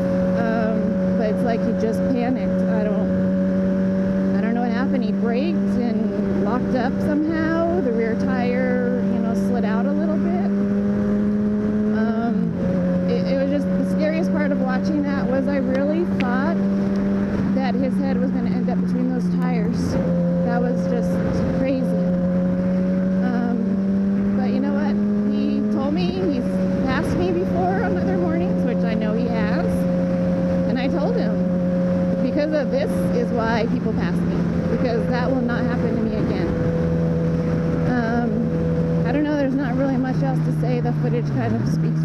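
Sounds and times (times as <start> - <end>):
motorcycle engine cruising: 0.0 - 42.0.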